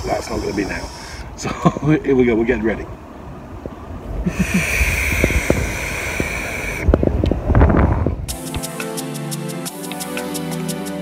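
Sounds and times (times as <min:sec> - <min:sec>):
vape draw airy hiss: 0:00.0 - 0:01.3
person laughing: 0:01.4 - 0:01.9, 0:04.2 - 0:05.2
wind rumble on microphone: 0:02.7 - 0:08.3.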